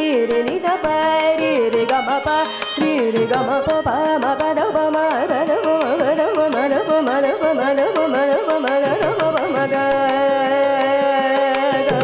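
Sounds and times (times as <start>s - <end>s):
mridangam drum strokes: 0.0s - 12.0s
violin melody: 0.0s - 12.0s
woman singing: 0.0s - 12.0s.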